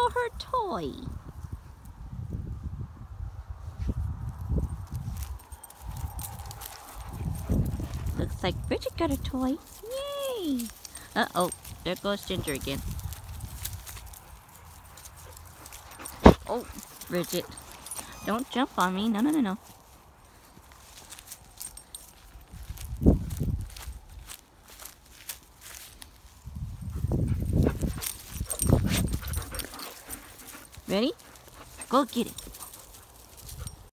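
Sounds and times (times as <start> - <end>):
faint rustles: 3.6 - 19.0.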